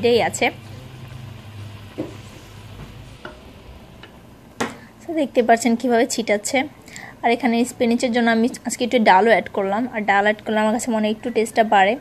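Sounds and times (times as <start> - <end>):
pot boiling and bubbling: 0.0 - 7.2.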